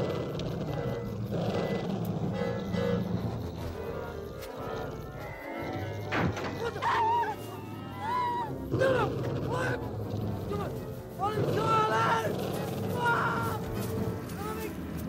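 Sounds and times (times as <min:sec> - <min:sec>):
low droning horror score: 0:00.0 - 0:15.0
wavering high-pitched cries: 0:02.2 - 0:13.8.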